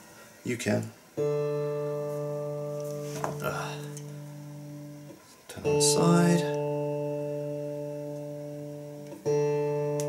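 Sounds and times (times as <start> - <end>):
electric guitar string plucked: 1.2 - 10.0.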